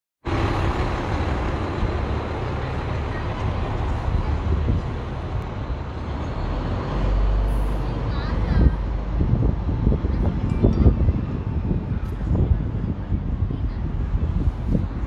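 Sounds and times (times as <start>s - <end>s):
vehicle engine rumble: 0.2s - 15.0s.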